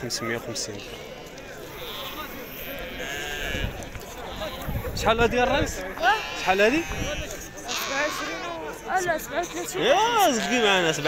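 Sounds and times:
murmur of voices: 0:00.0 - 0:11.0
sheep bleating: 0:00.5 - 0:04.8, 0:06.0 - 0:11.0.

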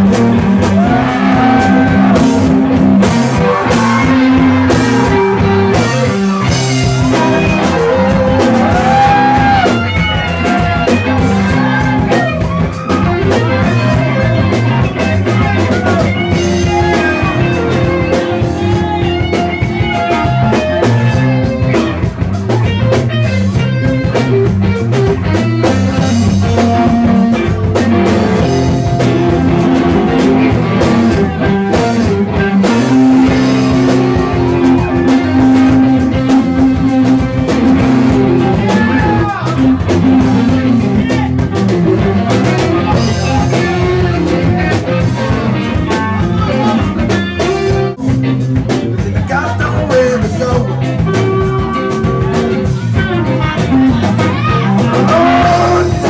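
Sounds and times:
electric guitar held notes: 0:00.0 - 0:49.0
bass guitar: 0:00.0 - 0:56.0
drum kit steady beat: 0:00.0 - 0:56.0.

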